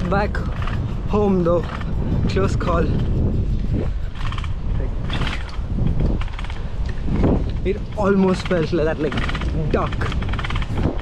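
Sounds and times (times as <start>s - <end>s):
bicycle rapid ticking: 0.0s - 11.0s
wind on microphone: 0.0s - 11.0s.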